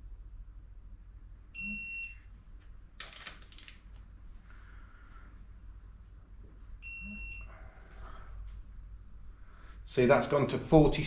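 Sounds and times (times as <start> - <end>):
torque wrench electronic beep: 1.6 - 2.2, 6.8 - 7.5.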